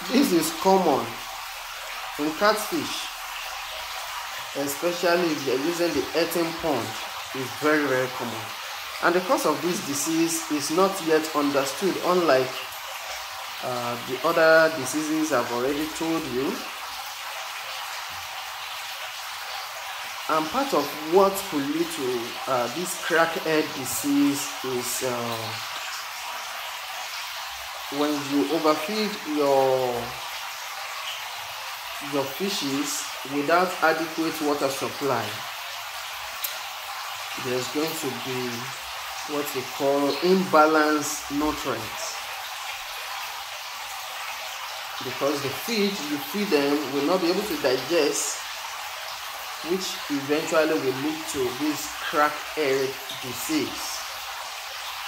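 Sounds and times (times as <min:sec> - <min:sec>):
splashing water hiss: 0:00.0 - 0:55.0.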